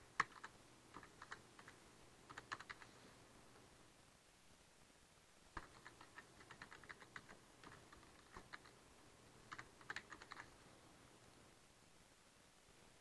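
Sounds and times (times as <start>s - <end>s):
keyboard typing: 0.2s - 2.9s, 5.6s - 8.8s, 9.4s - 10.6s.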